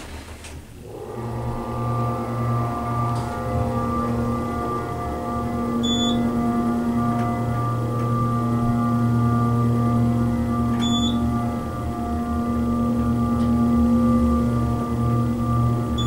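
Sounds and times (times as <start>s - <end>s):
elevator pump motor drone: 0.0s - 16.0s.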